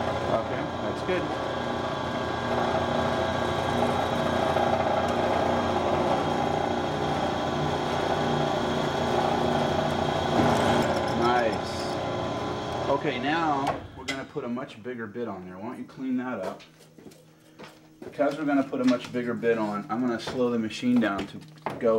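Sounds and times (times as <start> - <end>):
drill bit cutting steel: 0.0 - 14.2
drill press motor hum: 0.0 - 14.4.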